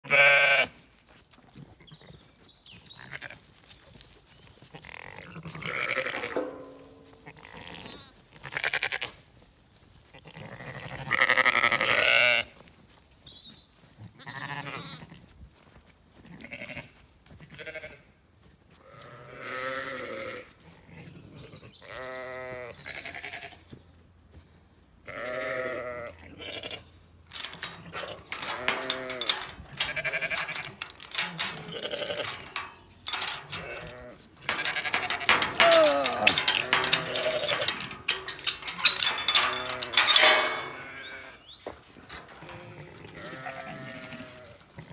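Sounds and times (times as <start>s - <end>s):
metal gate clicking and rattling: 5.6s - 7.8s, 27.3s - 44.0s
sheep bleating: 42.5s - 44.6s.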